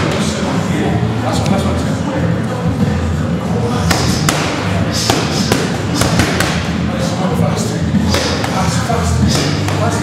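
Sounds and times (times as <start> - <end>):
boxing gloves punching pads: 3.8 - 6.8, 8.0 - 10.0.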